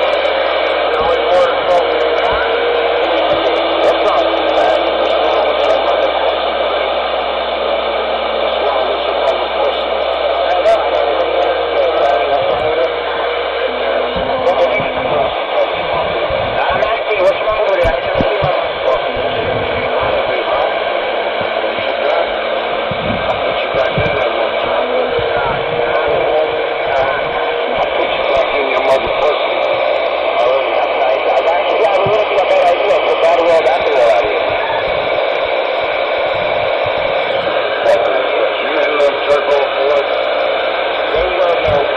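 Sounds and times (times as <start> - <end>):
garbled radio voices: 0.0 - 41.9
radio static: 0.0 - 41.9.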